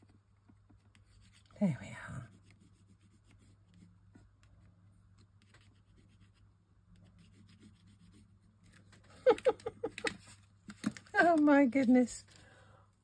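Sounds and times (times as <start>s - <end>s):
pencil scratching on card: 0.0s - 8.8s
low room hum: 0.0s - 13.0s.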